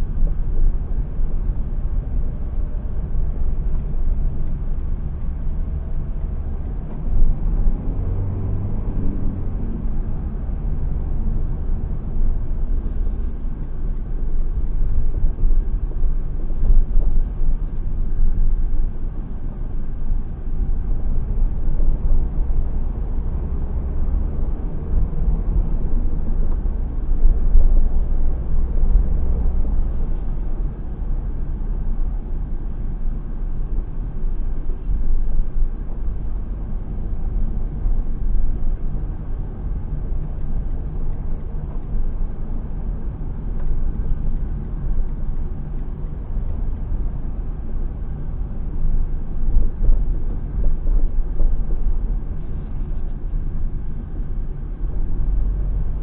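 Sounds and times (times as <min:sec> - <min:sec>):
car engine and road rumble: 0:00.0 - 0:56.0.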